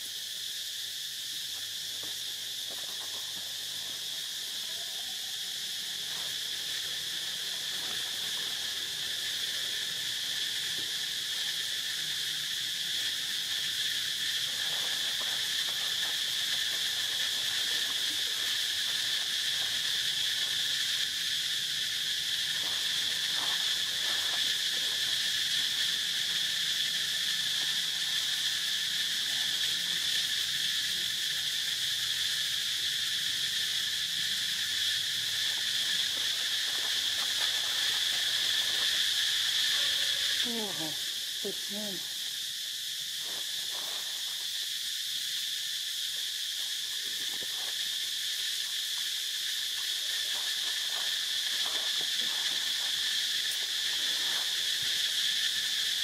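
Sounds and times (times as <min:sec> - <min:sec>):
high-pitched insect chorus: 0:00.0 - 0:56.0.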